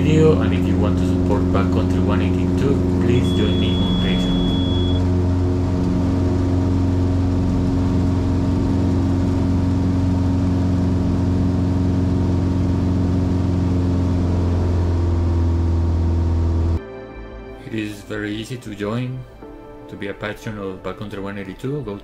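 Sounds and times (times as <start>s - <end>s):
airplane engine and propeller: 0.0s - 16.8s.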